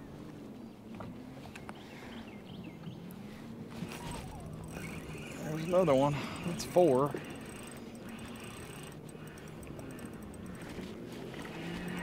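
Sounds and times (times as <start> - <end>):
fishing reel whirring: 3.7 - 12.0.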